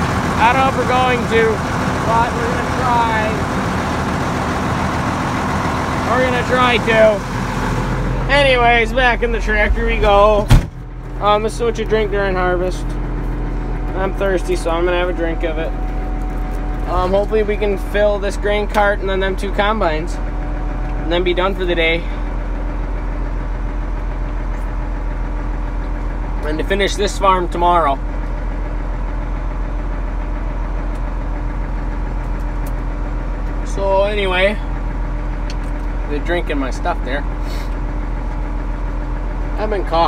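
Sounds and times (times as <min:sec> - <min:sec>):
diesel engine droning: 0:00.0 - 0:40.0.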